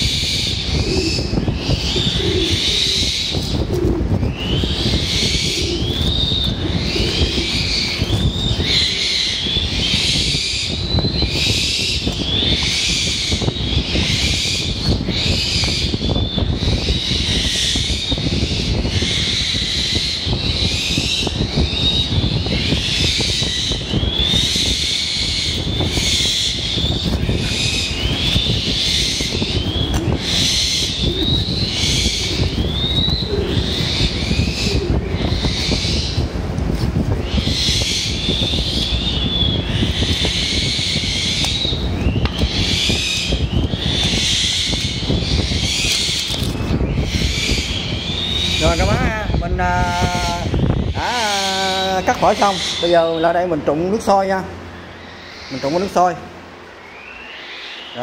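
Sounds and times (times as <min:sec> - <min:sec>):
steady low rumble: 0:00.0 - 0:57.4.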